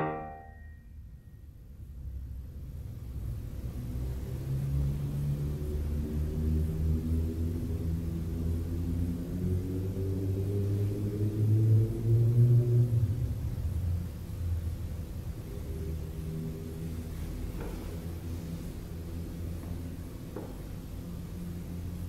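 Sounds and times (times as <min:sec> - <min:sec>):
piano low chords: 0:00.0 - 0:01.0.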